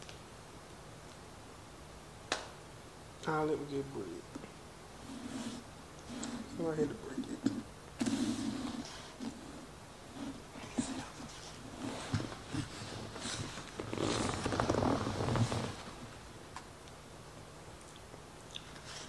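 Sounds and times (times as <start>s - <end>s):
person chewing: 17.8s - 18.8s.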